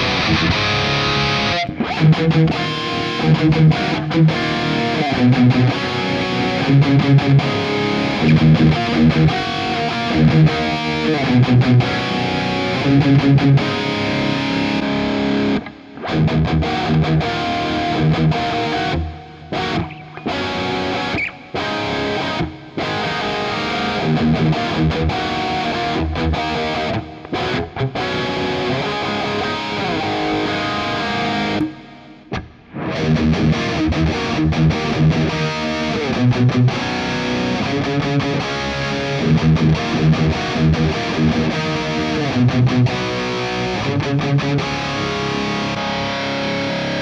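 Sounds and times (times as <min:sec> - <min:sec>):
distorted electric guitar riff: 0:00.0 - 0:47.0.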